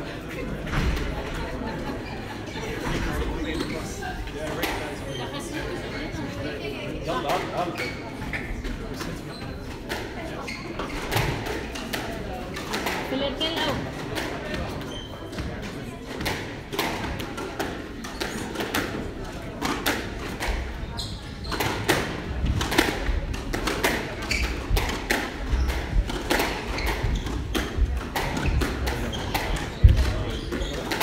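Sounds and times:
squash ball knocks: 21.6s - 31.0s.

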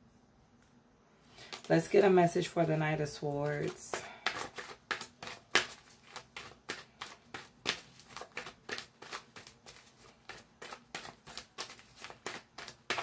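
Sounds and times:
cards being shuffled: 1.4s - 1.8s, 3.5s - 13.0s.

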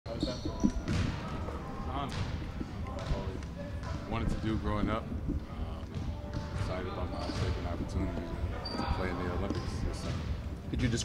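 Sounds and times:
basketballs bouncing: 0.1s - 11.0s
faint voices talking: 0.1s - 11.0s.

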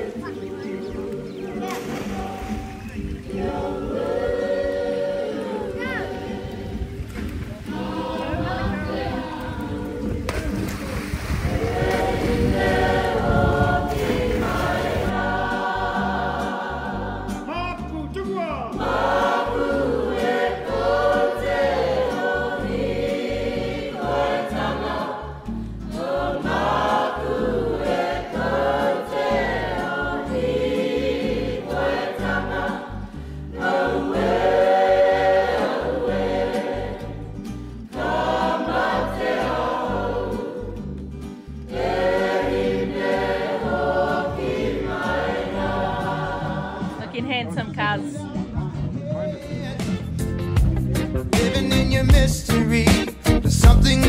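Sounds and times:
choir singing: 0.0s - 41.0s, 41.7s - 48.5s.

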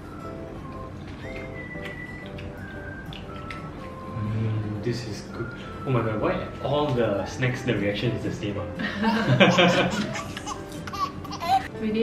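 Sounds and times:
people laughing: 8.8s - 10.6s.

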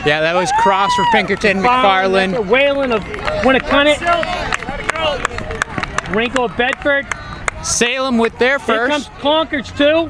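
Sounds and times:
commentators and spectators talking: 0.0s - 10.0s.

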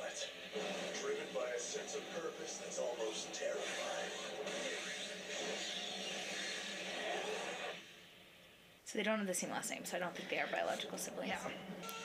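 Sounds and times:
action sound effects: 3.5s - 7.8s.

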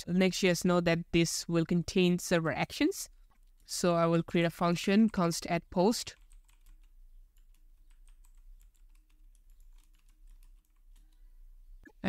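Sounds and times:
typing on keyboard: 6.1s - 11.2s.

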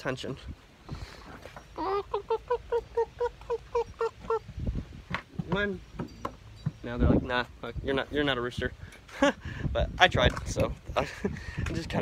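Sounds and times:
man imitating rooster clucks: 1.8s - 4.6s.

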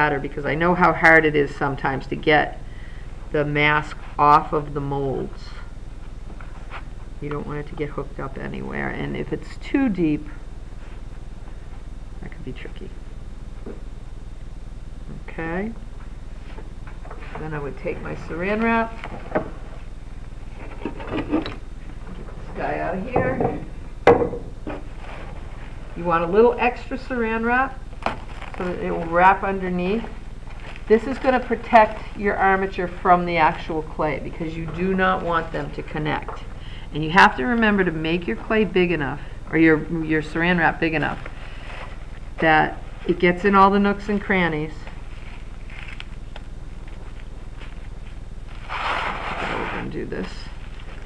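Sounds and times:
steady low hum: 0.0s - 51.0s
plastic cling wrap rustling: 27.8s - 35.8s, 40.8s - 43.2s, 44.8s - 49.7s, 50.3s - 51.0s.

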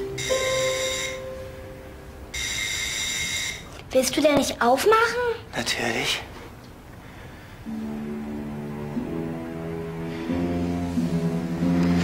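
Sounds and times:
electric doorbell ringing: 0.0s - 3.6s.

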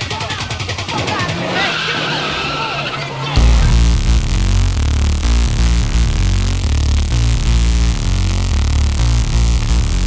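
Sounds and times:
low held synth note: 3.4s - 10.0s.

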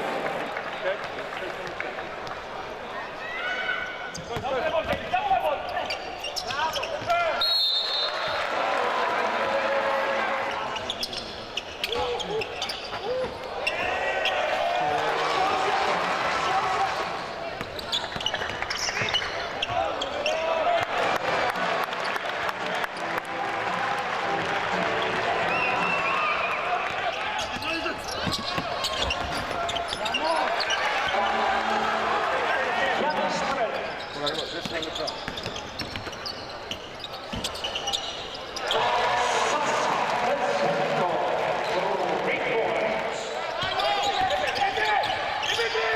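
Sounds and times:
basketball bouncing on court: 17.6s - 19.8s, 34.6s - 36.4s.

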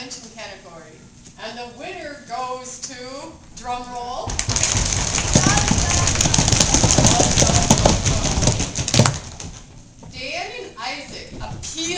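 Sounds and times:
audience applauding: 4.3s - 9.6s
voices: 5.2s - 9.0s.

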